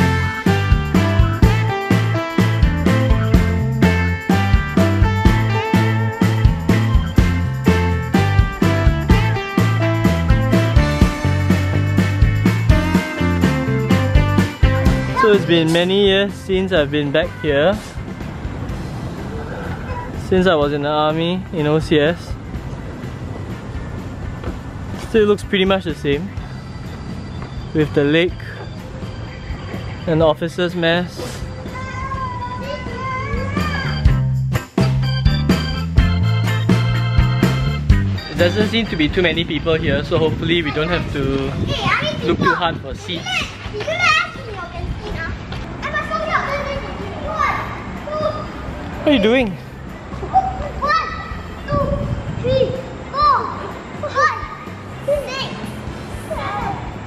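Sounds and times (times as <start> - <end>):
young children chattering: 19.2 - 20.2, 31.2 - 34.0, 40.5 - 57.0.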